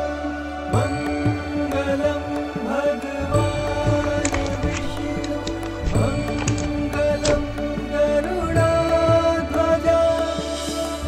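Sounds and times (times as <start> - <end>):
chant-like voice: 1.5 - 11.0.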